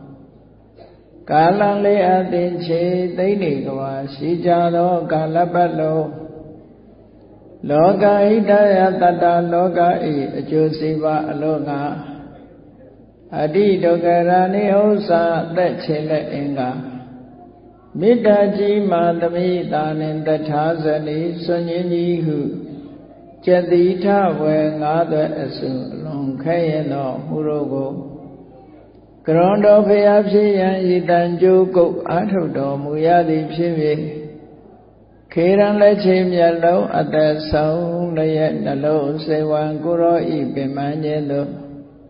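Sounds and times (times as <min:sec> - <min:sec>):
man chanting: 0:00.0 - 0:42.0.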